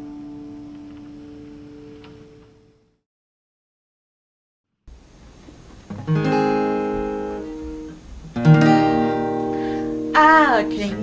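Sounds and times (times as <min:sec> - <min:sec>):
acoustic guitar chord ringing: 0:00.0 - 0:02.9, 0:05.8 - 0:11.0.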